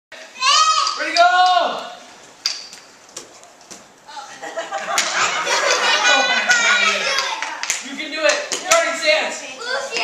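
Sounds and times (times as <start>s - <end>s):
low room noise: 0.1s - 10.0s.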